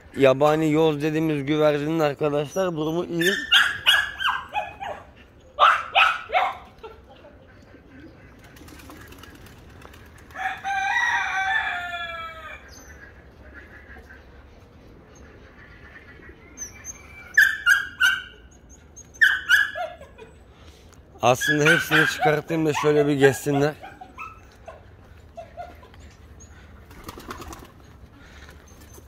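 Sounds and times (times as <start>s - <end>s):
sharp animal calls: 2.5s - 6.6s, 15.8s - 20.1s, 21.2s - 24.8s
rooster crowing: 10.4s - 12.7s.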